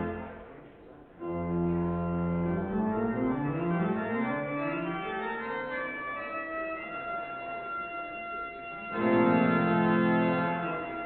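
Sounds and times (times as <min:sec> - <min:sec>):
church organ chords: 0:00.0 - 0:00.5, 0:01.2 - 0:11.0.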